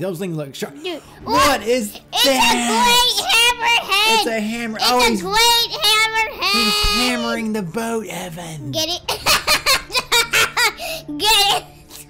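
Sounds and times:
person laughing: 0:09.1 - 0:11.0.

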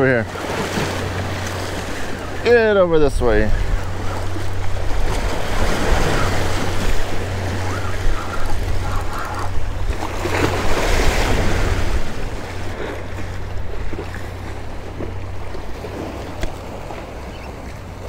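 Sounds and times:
waves splashing against rocks: 0:00.0 - 0:18.0
wind on microphone: 0:02.1 - 0:16.6.

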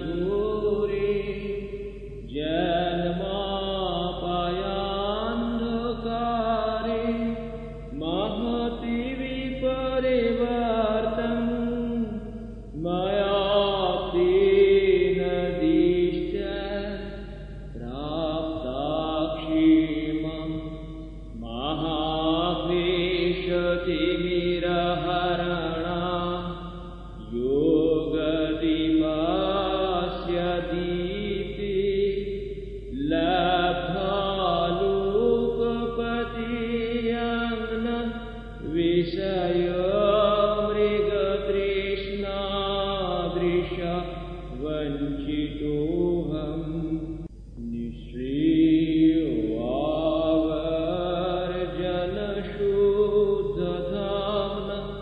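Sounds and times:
man chanting: 0:00.0 - 0:55.0.

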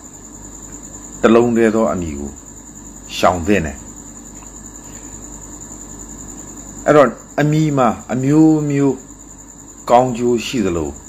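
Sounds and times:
crickets chirping: 0:00.0 - 0:11.0
man talking: 0:01.2 - 0:02.4, 0:03.1 - 0:03.9, 0:06.9 - 0:09.0, 0:09.9 - 0:11.0.

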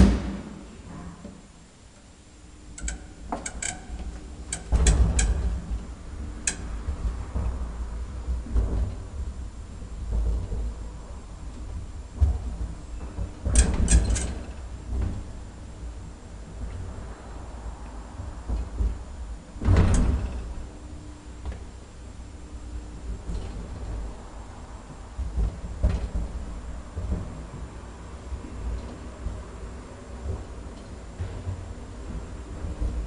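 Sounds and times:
low steady hum: 0:00.0 - 0:33.0
elevator clunk: 0:02.7 - 0:07.8, 0:08.4 - 0:17.0, 0:18.3 - 0:20.7
elevator metallic clicks: 0:02.8 - 0:06.7, 0:13.4 - 0:14.6.

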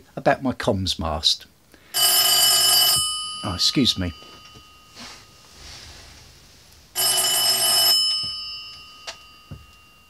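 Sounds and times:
telephone bell ringing: 0:01.9 - 0:06.0, 0:06.9 - 0:10.0.

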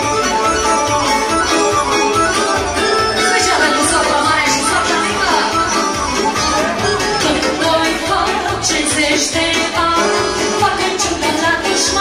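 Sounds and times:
live dance band music: 0:00.0 - 0:12.0.

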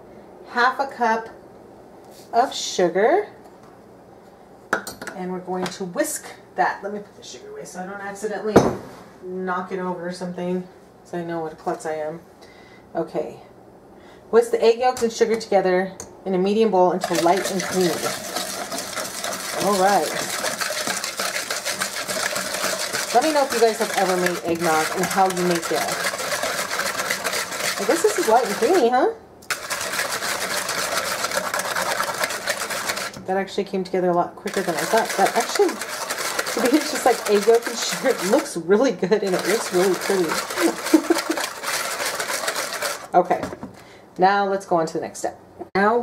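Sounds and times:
whisk beating in a bowl: 0:17.0 - 0:33.2, 0:34.4 - 0:43.1.

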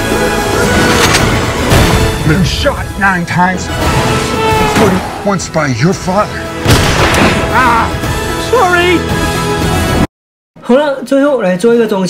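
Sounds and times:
dramatic music: 0:00.0 - 0:10.1
loud bang: 0:06.6 - 0:07.6.

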